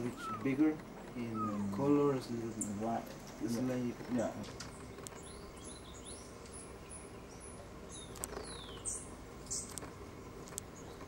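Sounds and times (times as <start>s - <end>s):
bird whistle gliding down: 0.1s - 0.5s
sharp bird ticks: 4.6s - 11.0s.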